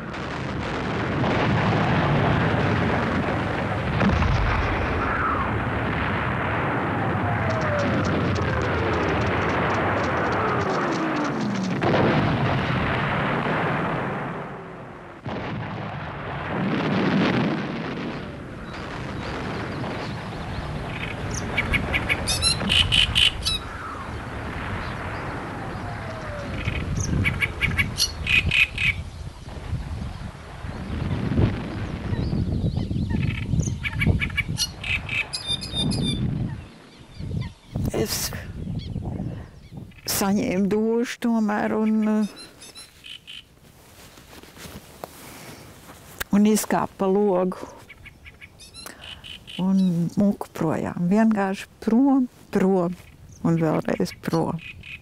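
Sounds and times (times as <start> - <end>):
low rumbling booms: 0.0 - 40.7
reed warbler chattering song: 41.6 - 43.5, 47.8 - 50.4, 53.0 - 55.0.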